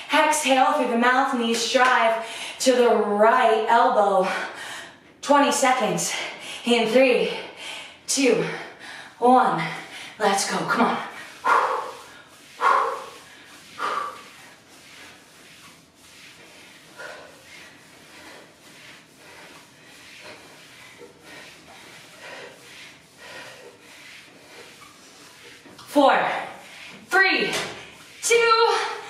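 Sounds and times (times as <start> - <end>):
faint breathing: 11.1 - 15.4, 16.3 - 25.7.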